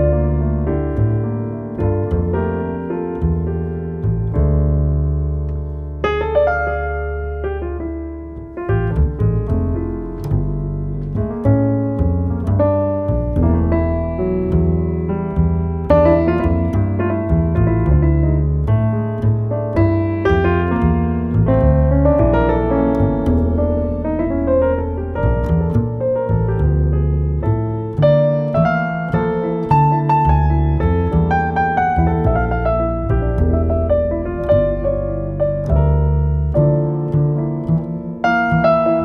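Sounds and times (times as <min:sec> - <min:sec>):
grand piano playing jazz: 0:00.0 - 0:39.0
upright bass playing low notes: 0:00.0 - 0:39.0.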